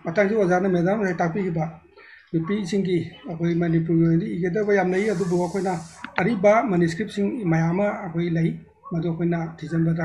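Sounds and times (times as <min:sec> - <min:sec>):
person talking: 0:02.3 - 0:06.5
faint hiss: 0:04.8 - 0:06.3.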